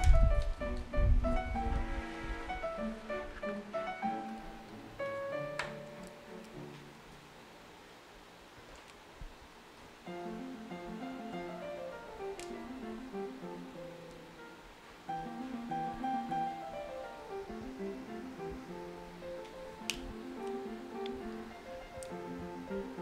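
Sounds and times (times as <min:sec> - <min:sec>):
sharp clicks: 0:12.2 - 0:12.6.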